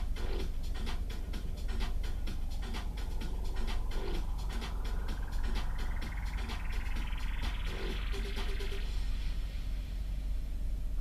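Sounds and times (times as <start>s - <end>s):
heavy low rumble: 0.0s - 11.0s
faint rising whistle: 2.1s - 9.8s.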